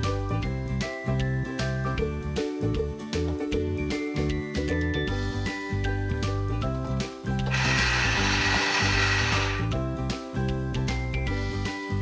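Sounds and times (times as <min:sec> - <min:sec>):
cheerful children's music: 0:00.0 - 0:12.0
toy cash register buzz: 0:07.5 - 0:09.7.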